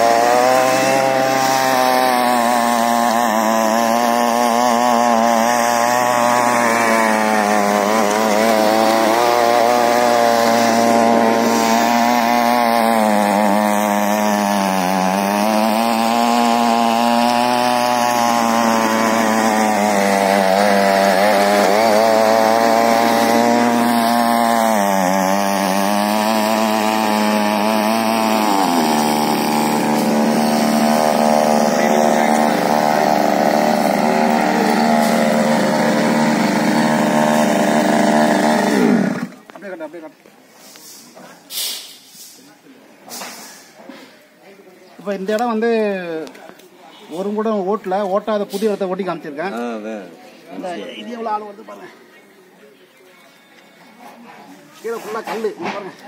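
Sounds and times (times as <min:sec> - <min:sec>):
small petrol engine running: 0:00.0 - 0:39.5
tines tilling soil: 0:00.0 - 0:39.5.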